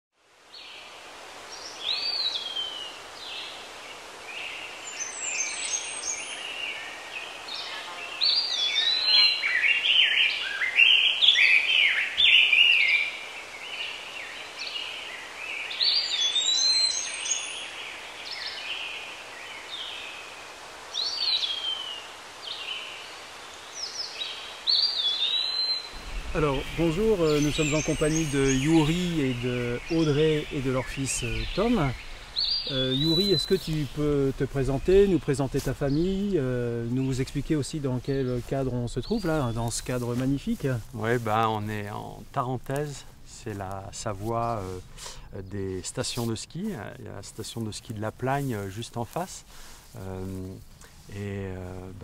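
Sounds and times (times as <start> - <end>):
birds singing: 1.5 - 52.0.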